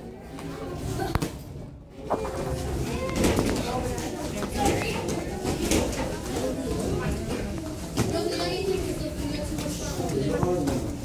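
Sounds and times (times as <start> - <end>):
indistinct echoing voices: 2.0 - 11.0.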